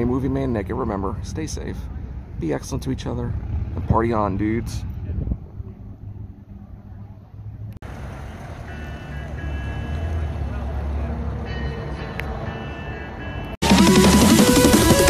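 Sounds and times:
car engine rumbling: 0.0 - 12.4
electronic dance music: 13.4 - 15.0.

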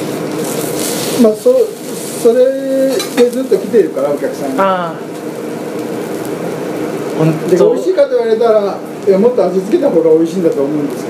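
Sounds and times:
food sizzling on a griddle: 0.0 - 11.0.

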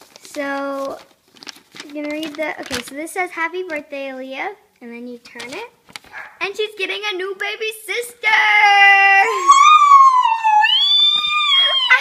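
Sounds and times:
girl squealing: 8.8 - 12.0.

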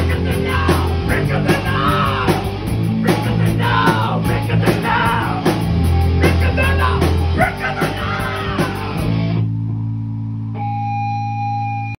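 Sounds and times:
high feedback tone: 10.4 - 12.0.

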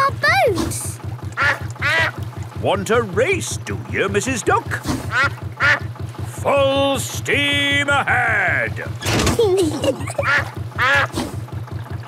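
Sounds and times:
cartoon duck quacking: 0.0 - 2.2, 5.1 - 5.9, 9.9 - 11.1
boat engine chugging: 0.0 - 12.0.

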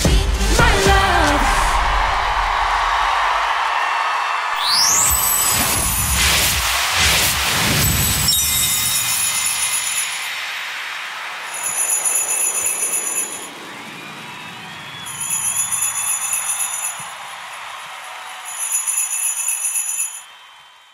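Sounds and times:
arena crowd noise: 0.0 - 20.9
sleigh bells jingling: 7.7 - 10.4, 11.4 - 13.6, 15.0 - 20.4.

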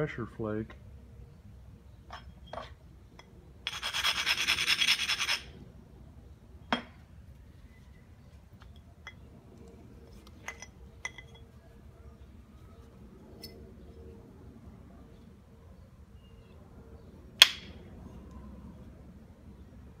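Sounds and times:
stone ground with abrader: 0.0 - 20.0.

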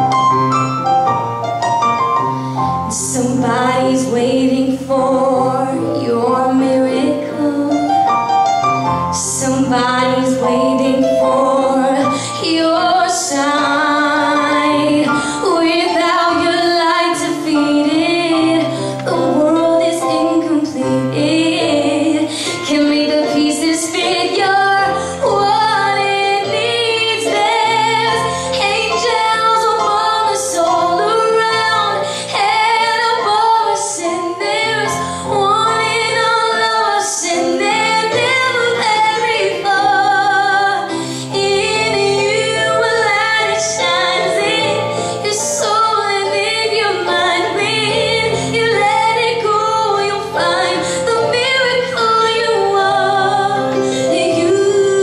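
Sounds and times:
instrumental accompaniment: 0.0 - 55.0
woman singing into microphone: 2.9 - 8.0, 9.2 - 55.0.

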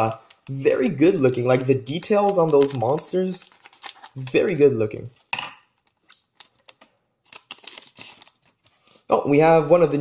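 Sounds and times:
cards shuffling ticks: 0.0 - 4.4
foil wrapper crinkling: 0.0 - 4.6, 5.8 - 9.0.

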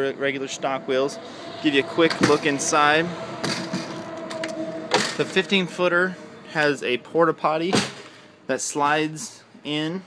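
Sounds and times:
steady hum: 0.0 - 9.5.

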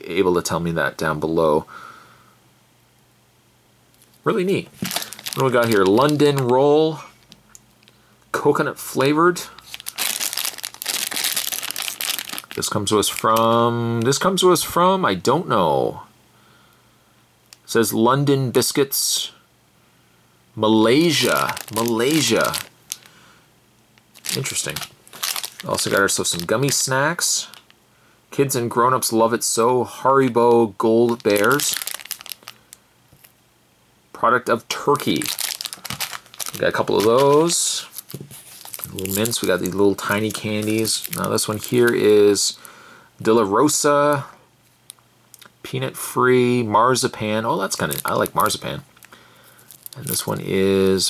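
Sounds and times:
plastic candy bag crinkling: 3.9 - 8.0, 8.9 - 14.3, 20.9 - 23.2, 24.0 - 27.7, 30.8 - 33.3, 34.7 - 42.7, 47.6 - 51.0
plastic wrapper crackling: 3.9 - 8.0, 9.4 - 14.3, 20.9 - 23.2, 24.0 - 27.7, 31.0 - 33.3, 34.9 - 42.7, 47.6 - 51.0.

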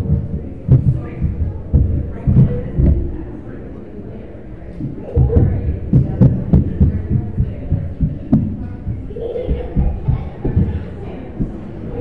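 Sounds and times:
dull thumps and knocks: 0.1 - 3.1.

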